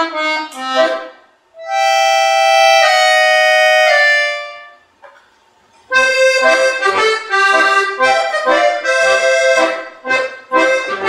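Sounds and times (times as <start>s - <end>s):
accordion playing held chords: 0.0s - 5.0s, 5.9s - 11.0s.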